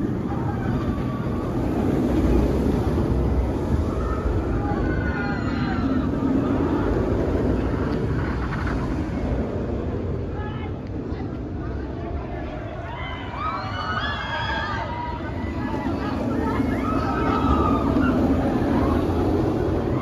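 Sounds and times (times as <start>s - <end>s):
people screaming: 0.0s - 8.7s, 12.2s - 20.0s
roller coaster rumbling on track: 0.0s - 20.0s.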